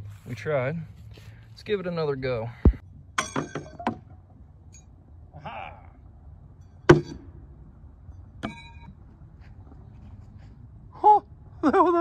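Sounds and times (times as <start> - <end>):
short metallic ring: 8.1 - 9.0.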